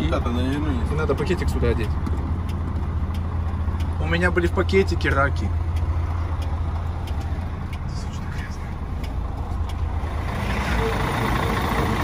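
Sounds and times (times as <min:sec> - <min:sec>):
truck diesel engine running: 0:00.0 - 0:12.0.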